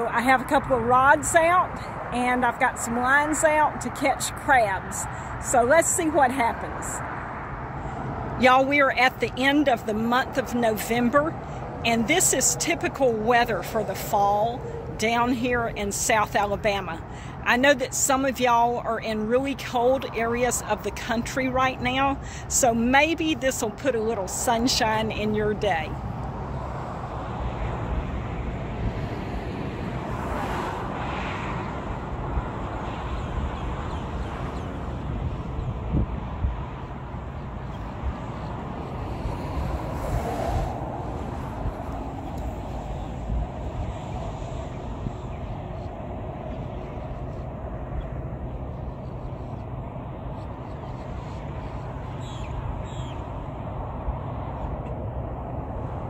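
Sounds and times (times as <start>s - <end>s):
road traffic hum: 0.0s - 56.0s.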